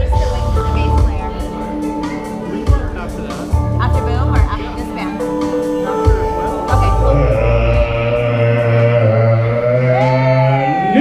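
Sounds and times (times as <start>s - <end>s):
sustained low chord: 0.0s - 10.1s
man singing long held note: 6.4s - 11.0s.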